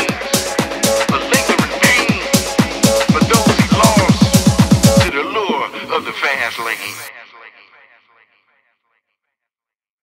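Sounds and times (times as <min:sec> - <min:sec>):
house music kick drum: 0:00.0 - 0:07.1
vocal snippet with echo: 0:00.0 - 0:09.0.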